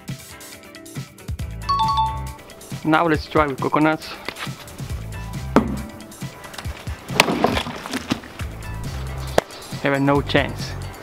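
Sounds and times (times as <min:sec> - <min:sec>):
background music with beat: 0:00.0 - 0:07.2
flail knocking on coconut: 0:05.6 - 0:05.9.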